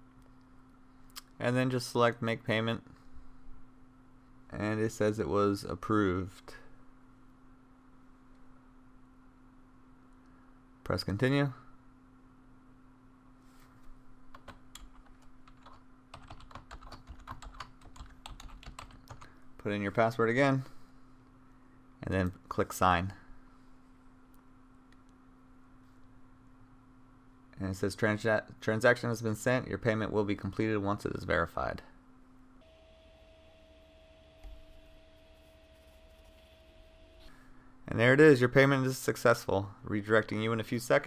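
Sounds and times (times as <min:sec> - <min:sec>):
faint steady hum: 0:00.0 - 0:41.0
computer keyboard typing: 0:14.3 - 0:19.3.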